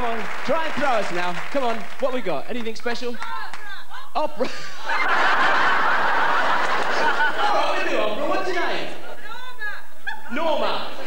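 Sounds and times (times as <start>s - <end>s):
man speaking: 0.0s - 3.2s, 7.4s - 9.0s, 10.3s - 11.0s
audience laughing: 3.7s - 10.8s
man laughing: 3.9s - 5.0s.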